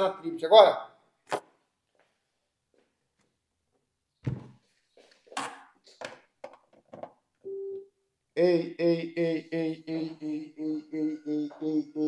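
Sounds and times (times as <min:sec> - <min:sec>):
thump: 0:04.2 - 0:04.6.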